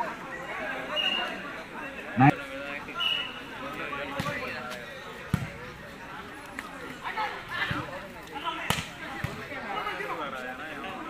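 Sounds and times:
men calling out: 0:02.1 - 0:02.6
volleyball struck with sharp slap: 0:05.3 - 0:05.6, 0:08.7 - 0:09.4.

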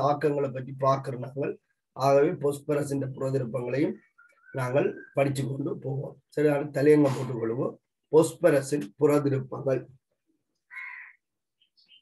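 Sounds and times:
crow cawing: 0:10.7 - 0:11.2.

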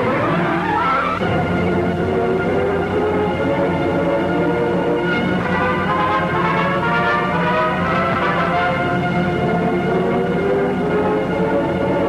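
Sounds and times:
orchestral music with brass: 0:00.0 - 0:12.0.

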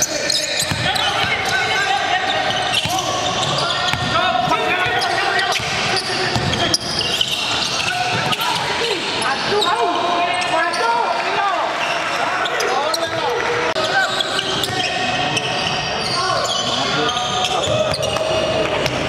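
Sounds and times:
sneakers squeaking: 0:00.0 - 0:11.0, 0:11.8 - 0:19.0
players calling out: 0:00.0 - 0:19.0
basketball bouncing: 0:00.6 - 0:01.4, 0:05.6 - 0:06.6.

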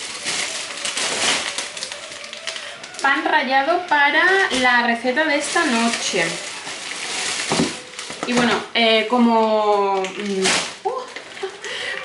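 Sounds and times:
plastic bag rustling: 0:00.0 - 0:12.0.

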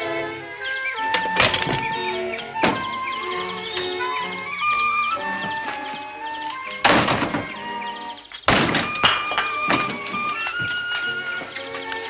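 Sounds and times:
background music score: 0:00.0 - 0:12.0
bricks crashing down: 0:06.8 - 0:07.5, 0:08.4 - 0:10.9
light knocks of bricks: 0:08.4 - 0:12.0.

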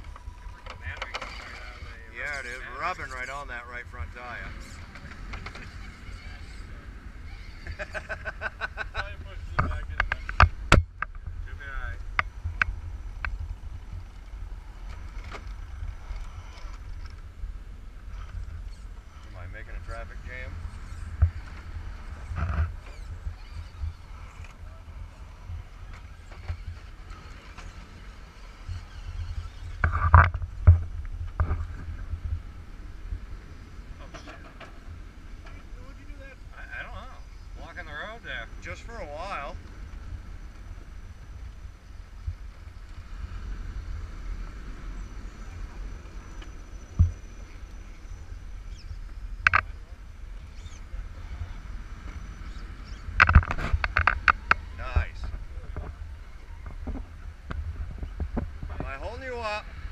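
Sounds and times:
wind rumble on microphone: 0:00.0 - 0:59.9.

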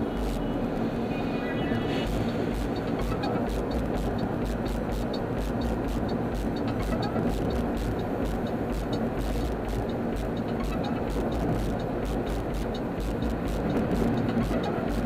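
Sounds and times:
music playing: 0:00.0 - 0:00.7, 0:01.6 - 0:15.0
car road and engine noise: 0:00.0 - 0:15.0.

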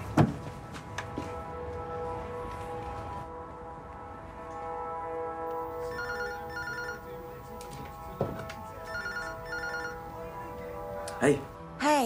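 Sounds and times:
soft background music: 0:00.6 - 0:12.0
telephone ringing: 0:05.5 - 0:07.6, 0:08.6 - 0:10.4.

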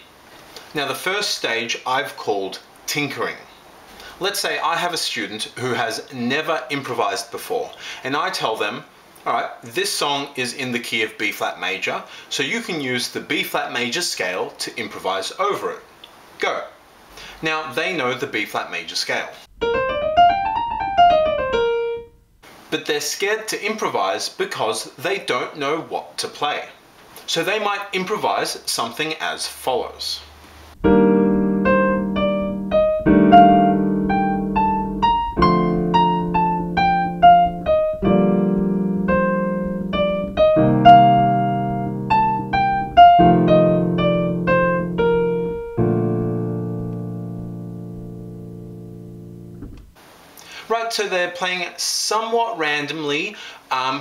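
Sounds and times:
piano scale single notes: 0:19.5 - 0:22.2, 0:30.8 - 0:50.0.

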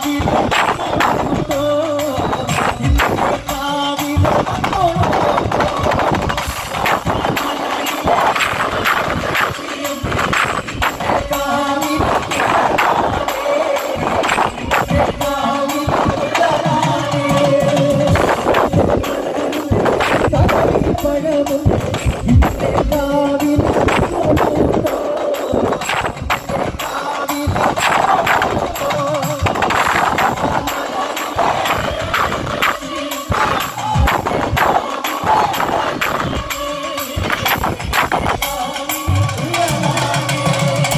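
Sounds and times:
live folk music: 0:00.0 - 0:40.9
person singing: 0:00.0 - 0:40.9
rapid percussion strokes: 0:00.0 - 0:40.9.

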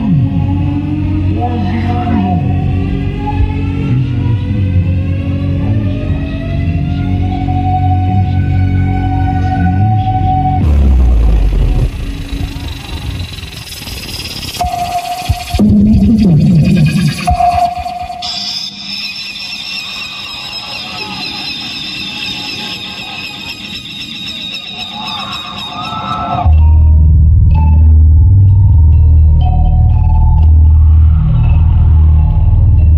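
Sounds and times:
heavy bass beat: 0:10.6 - 0:13.2, 0:14.6 - 0:18.2
held high electronic tones: 0:10.6 - 0:26.5.

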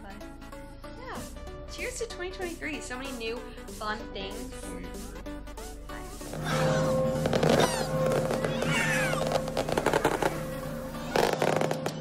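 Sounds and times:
music: 0:00.0 - 0:12.0
fireworks crackling and banging: 0:06.2 - 0:12.0.

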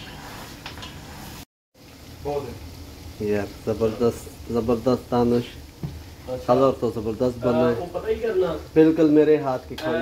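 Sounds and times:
curry sizzling in a pot: 0:00.0 - 0:10.0
man talking: 0:06.3 - 0:10.0.

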